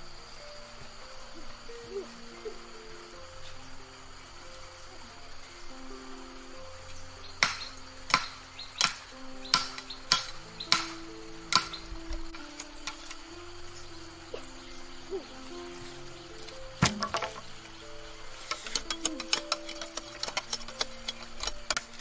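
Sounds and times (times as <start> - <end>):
background music: 0.0 - 22.0
knife chopping bamboo: 7.4 - 11.8, 16.8 - 17.5, 18.4 - 22.0.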